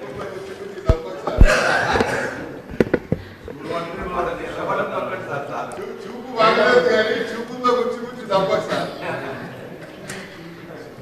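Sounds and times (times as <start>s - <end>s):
sharp knocks near microphone: 0.9s - 3.6s
people chuckling: 1.4s - 3.5s.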